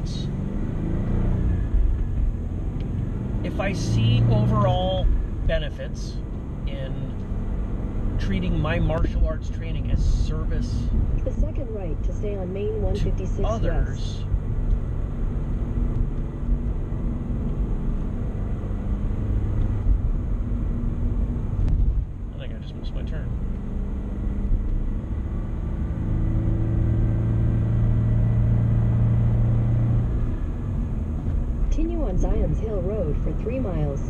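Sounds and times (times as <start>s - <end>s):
car engine and road noise: 0.0s - 34.0s.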